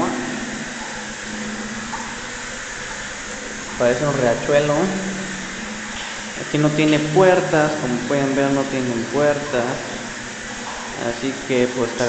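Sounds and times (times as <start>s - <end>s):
flush water rushing: 0.0s - 12.0s.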